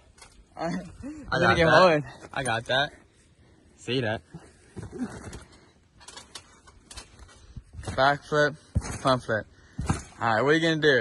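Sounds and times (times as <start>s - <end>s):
trampoline knocks: 7.8s - 10.4s.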